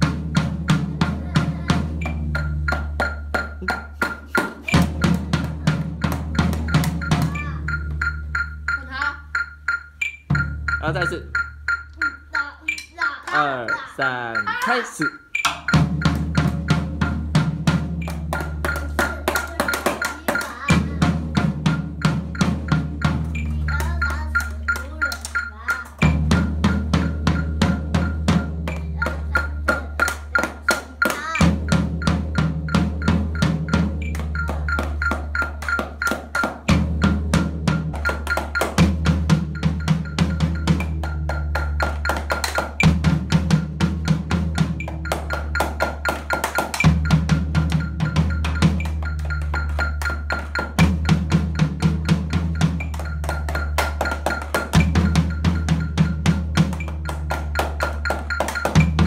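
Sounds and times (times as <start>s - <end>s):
sticks drumming on drum and pads: 0.0s - 59.0s.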